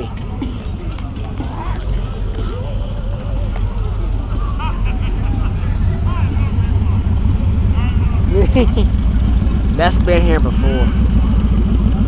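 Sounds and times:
car engines rumbling past: 0.0s - 12.0s
crowd voices: 0.0s - 12.0s.

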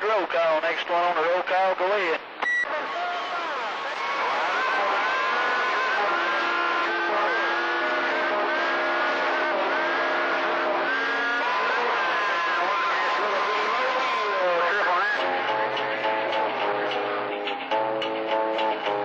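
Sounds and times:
radio static: 0.0s - 2.8s, 4.6s - 15.3s
garbled radio voices: 0.0s - 3.0s, 3.6s - 17.4s.

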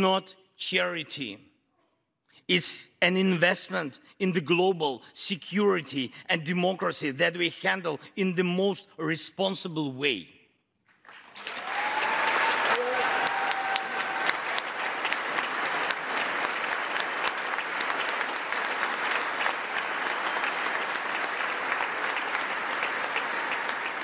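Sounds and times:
audience clapping: 10.9s - 24.0s
crowd cheering: 11.2s - 24.0s.

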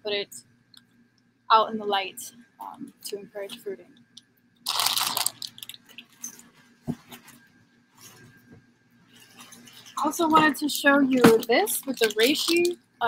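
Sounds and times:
plastic bag crinkling: 4.7s - 6.4s, 11.4s - 12.8s.

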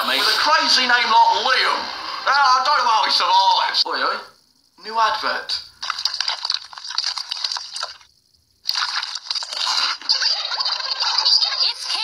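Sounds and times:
wet chewing and sucking candy: 5.8s - 11.2s.

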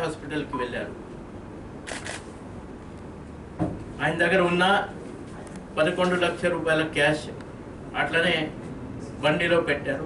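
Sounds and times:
low room noise: 0.0s - 10.0s
camera shutter clicking: 1.8s - 2.3s.

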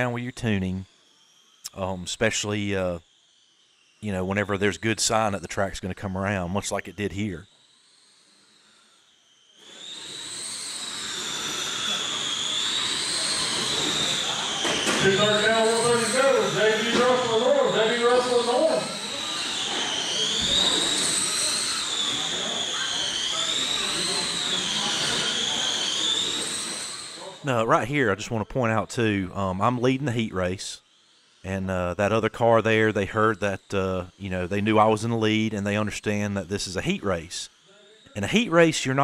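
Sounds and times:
electric motors whining: 0.0s - 39.0s.

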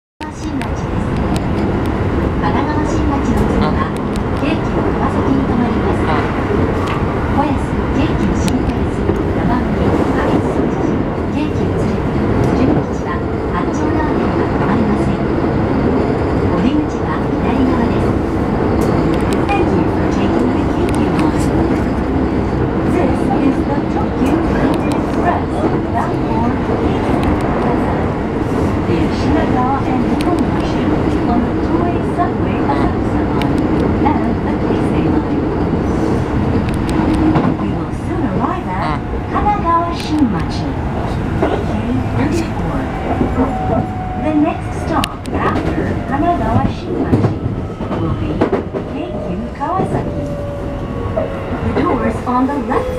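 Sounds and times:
train wheels rumbling on rail: 0.2s - 52.9s.

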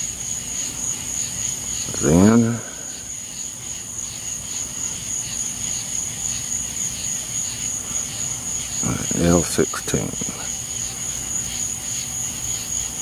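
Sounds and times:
high-pitched insect drone: 0.0s - 13.0s
lower pulsing insect call: 0.0s - 13.0s.

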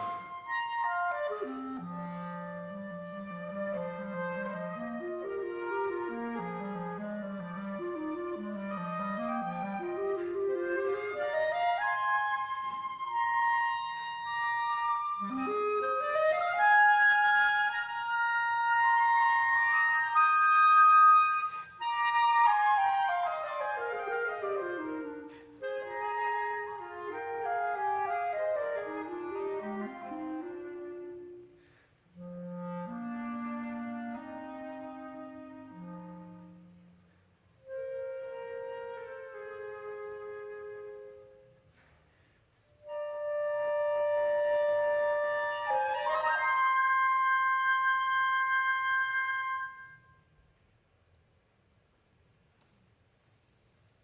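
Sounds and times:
flute and clarinet playing: 0.0s - 42.0s, 42.6s - 50.5s.

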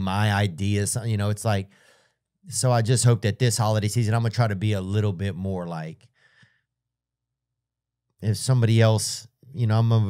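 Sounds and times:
faint breath at microphone: 1.7s - 2.2s, 6.1s - 6.7s.

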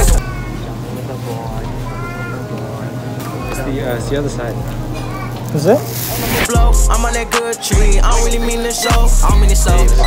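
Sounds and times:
high drawn-out voices: 0.0s - 10.0s.

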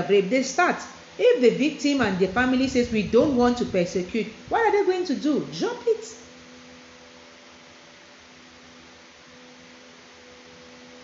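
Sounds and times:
steady hiss: 0.0s - 11.0s
faint low hum: 1.6s - 6.4s.

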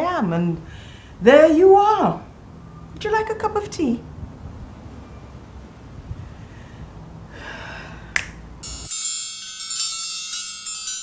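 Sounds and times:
finger snap: 8.1s - 8.4s
sparkling magic chime effect: 8.6s - 11.0s.

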